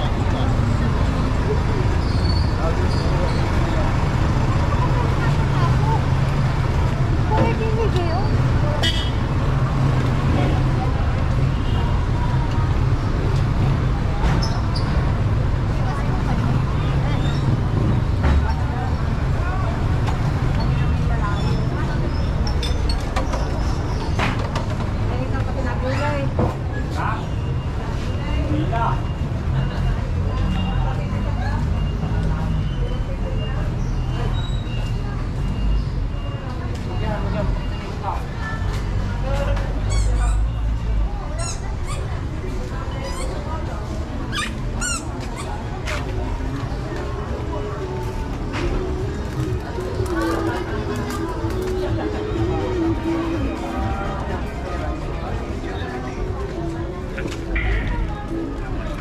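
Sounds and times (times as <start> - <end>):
people talking indistinctly: 0.0 - 59.0
vehicle engines rumbling: 0.0 - 59.0
car horn toot: 8.8 - 9.2.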